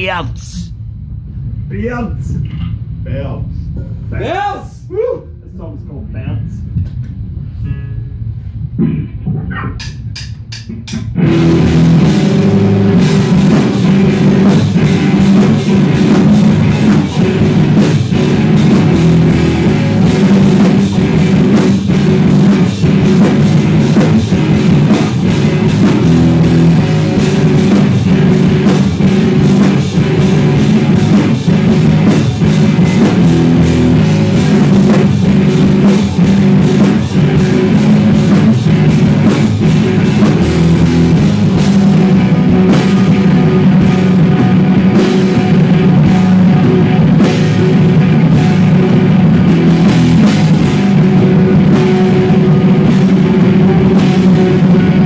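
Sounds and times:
rock band playing: 11.0s - 55.0s.

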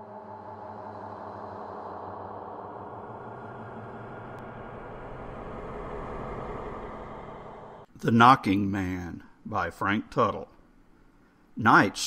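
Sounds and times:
dark ambient drone: 0.0s - 7.9s.

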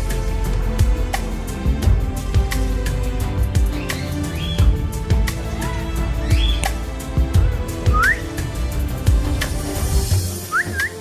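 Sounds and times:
background music with steady beat: 0.0s - 11.0s
parakeet rising whistle: 3.8s - 4.6s, 7.9s - 8.4s, 10.5s - 11.0s.

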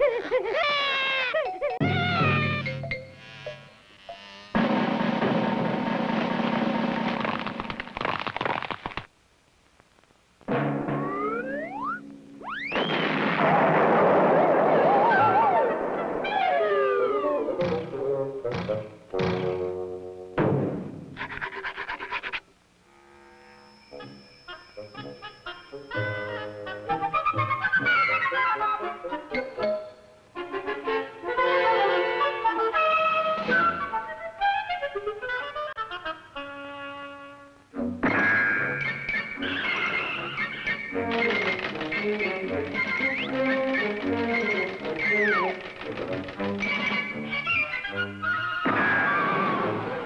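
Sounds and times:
cartoon music: 0.6s - 3.7s, 10.7s - 12.8s, 16.3s - 18.0s, 24.0s - 29.9s, 38.1s - 45.7s.

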